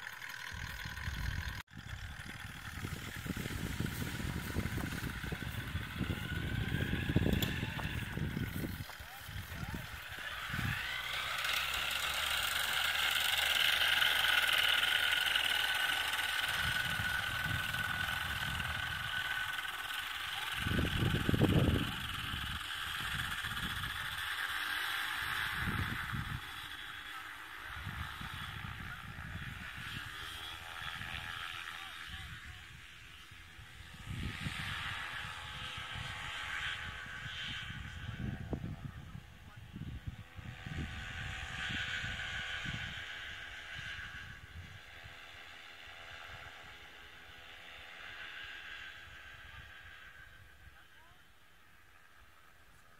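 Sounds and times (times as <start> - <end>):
propeller engine droning: 0.0 - 52.9
wind buffeting microphone: 0.4 - 11.4, 16.2 - 24.4, 25.2 - 26.6, 32.1 - 45.2.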